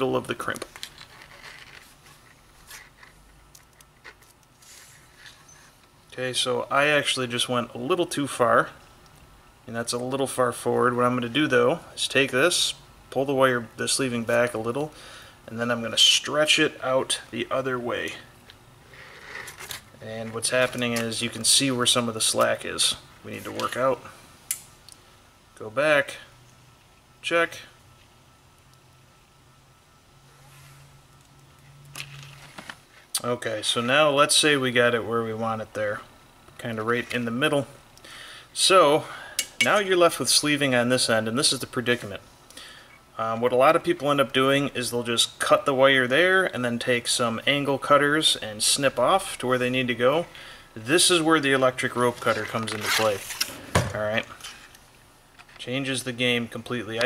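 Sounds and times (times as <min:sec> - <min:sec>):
cable sleeving rustling: 0:00.0 - 0:06.0, 0:50.9 - 0:55.7
steady low hum: 0:00.0 - 0:57.0.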